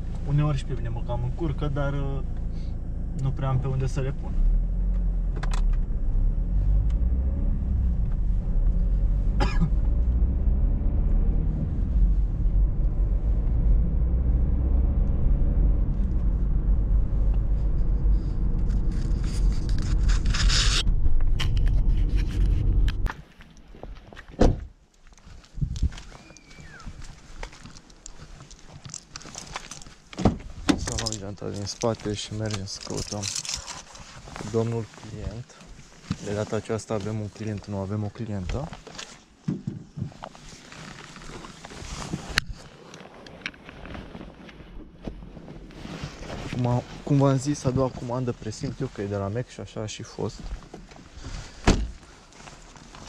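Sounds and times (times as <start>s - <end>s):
car engine and road rumble: 0.0s - 53.0s.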